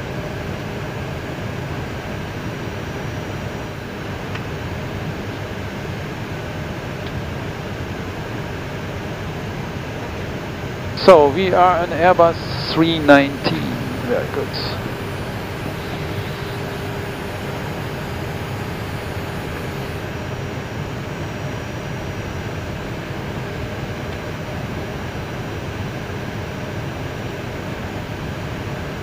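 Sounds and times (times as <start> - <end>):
faint hum: 11.0 - 20.1
ventilation hiss: 11.0 - 20.1
jet engines idling: 11.0 - 20.2.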